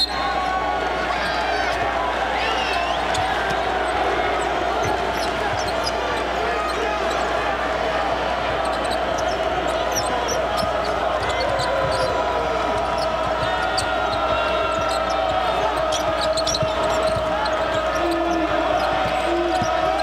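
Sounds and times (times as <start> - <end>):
arena crowd noise: 0.0 - 20.0
sneaker squeaks: 0.0 - 20.0
basketball dribbling on court: 3.0 - 6.2, 8.3 - 20.0.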